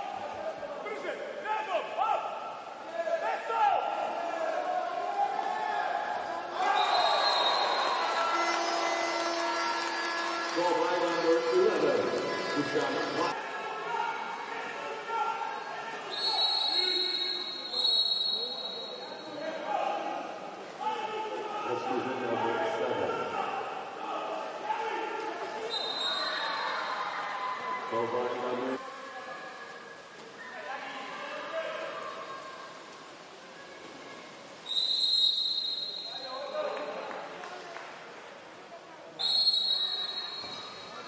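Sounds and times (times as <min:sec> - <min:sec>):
referee's whistle blast: 0:16.1 - 0:19.3, 0:34.7 - 0:36.6, 0:39.2 - 0:41.0.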